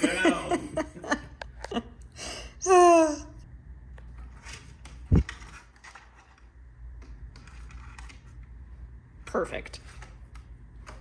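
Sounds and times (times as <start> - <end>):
cat claws scratching and clicking: 4.3 - 8.5.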